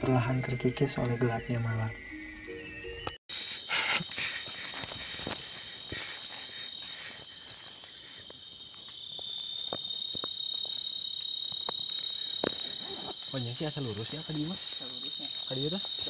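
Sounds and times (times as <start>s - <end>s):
night insects trilling: 0.0s - 16.0s.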